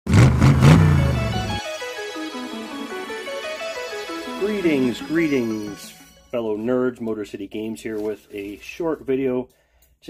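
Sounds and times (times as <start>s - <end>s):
car engine revving: 0.1s - 1.6s
jingle melody of short notes: 0.6s - 7.0s.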